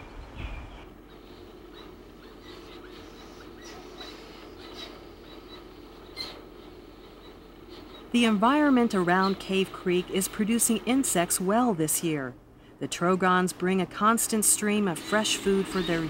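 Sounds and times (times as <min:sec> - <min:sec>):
low background hum: 0:00.0 - 0:16.0
nestlings squeaking: 0:01.0 - 0:06.6.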